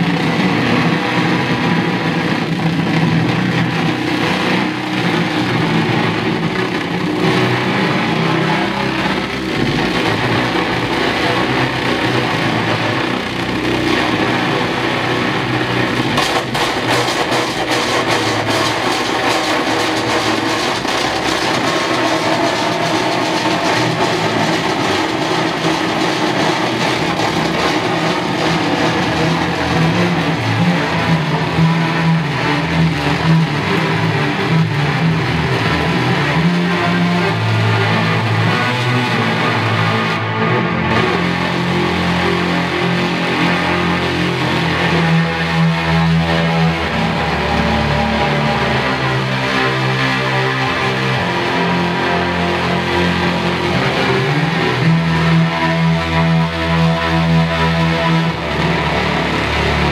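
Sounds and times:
distorted electric guitar: 0.0 - 59.9
fast crackling texture: 5.1 - 34.5.

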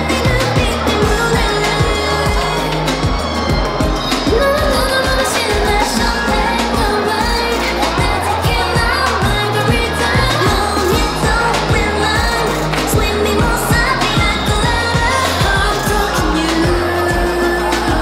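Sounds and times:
pop song with singing: 0.0 - 18.0.

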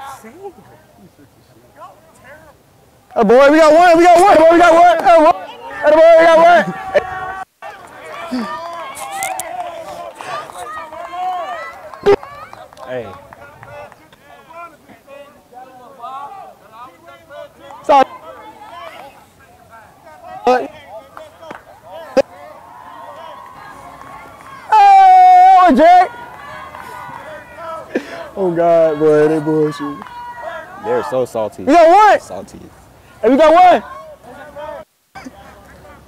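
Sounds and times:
player shouting: 3.2 - 12.4, 20.0 - 32.3, 33.1 - 34.8.

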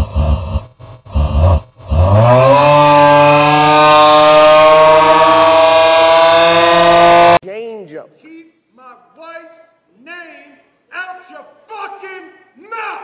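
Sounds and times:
loud droning tone: 0.0 - 7.4.

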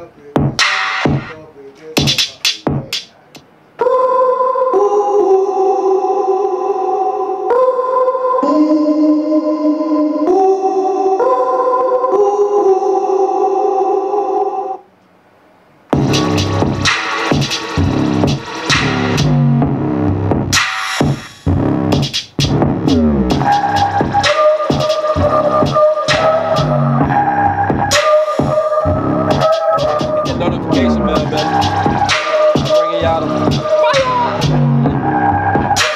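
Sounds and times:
hip-hop beat: 0.0 - 3.4, 16.0 - 35.9.

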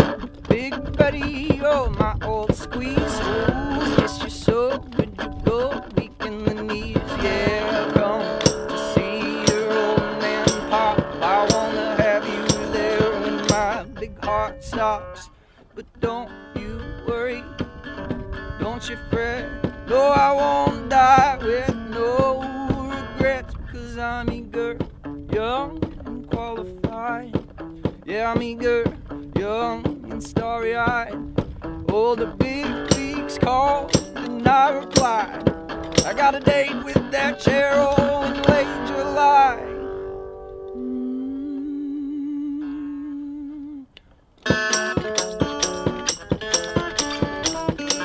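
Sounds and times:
guitar percussive thumps: 0.0 - 14.4, 16.0 - 23.4, 24.2 - 38.8, 44.4 - 48.0
kick drum beat: 8.0 - 13.7, 33.9 - 34.1, 35.0 - 36.2
wavering held vocal note: 40.8 - 43.9.

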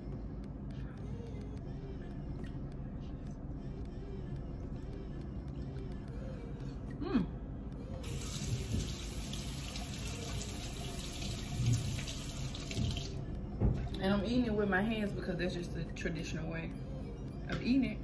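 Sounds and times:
tap running into a sink: 8.1 - 13.8.

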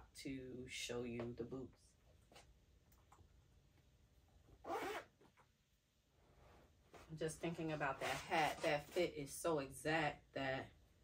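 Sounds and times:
boot zipper being pulled open: 4.6 - 5.2.

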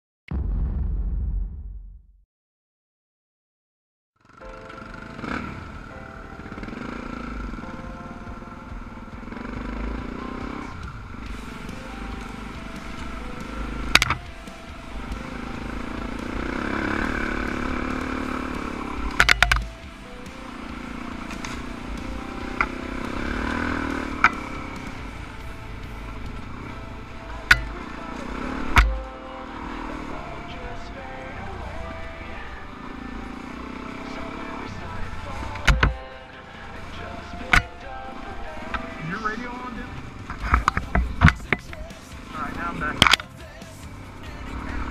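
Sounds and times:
motorcycle engine running: 4.2 - 44.9.

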